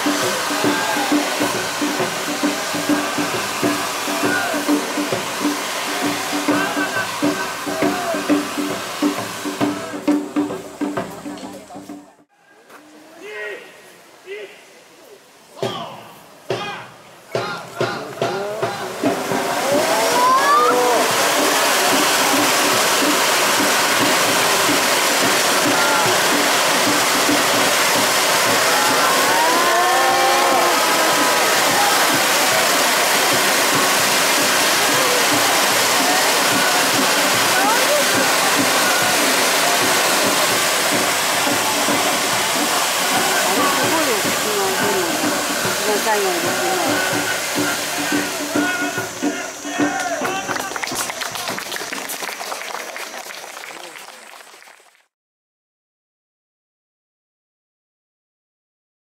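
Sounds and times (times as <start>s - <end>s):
people shouting: 0.0s - 5.1s, 5.8s - 8.5s, 16.6s - 23.0s, 25.4s - 50.8s
fireworks spraying sparks hiss: 0.0s - 12.0s, 18.0s - 52.7s.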